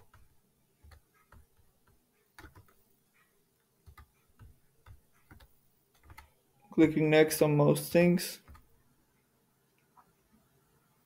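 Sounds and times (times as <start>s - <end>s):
computer mouse clicks: 0.0s - 3.3s, 3.9s - 6.3s.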